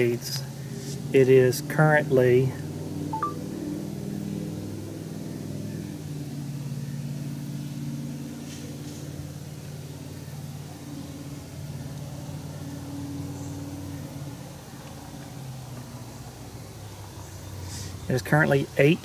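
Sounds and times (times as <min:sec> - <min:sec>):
short electronic beep: 0:03.2 - 0:03.4.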